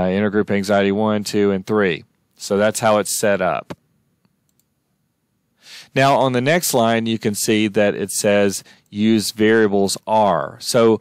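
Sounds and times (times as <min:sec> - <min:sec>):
person speaking: 0:00.0 - 0:03.8, 0:05.7 - 0:11.0
computer mouse clicks: 0:04.2 - 0:04.7
breath drawn in: 0:05.6 - 0:06.0.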